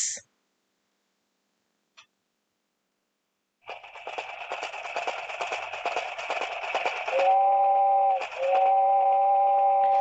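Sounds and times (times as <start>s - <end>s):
steam hiss: 0.0s - 0.2s
cartoon steam train chugging: 3.6s - 10.0s.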